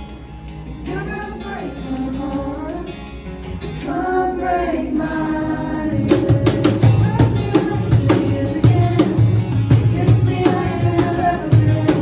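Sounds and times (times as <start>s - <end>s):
strummed acoustic guitars: 0.0s - 12.0s
cajon slaps and thumps: 6.0s - 12.0s.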